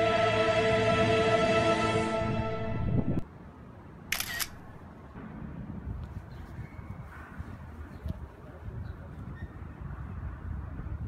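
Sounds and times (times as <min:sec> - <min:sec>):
music: 0:00.0 - 0:03.2
faint outdoor background: 0:00.0 - 0:11.0
phone camera shutter click: 0:04.1 - 0:04.7.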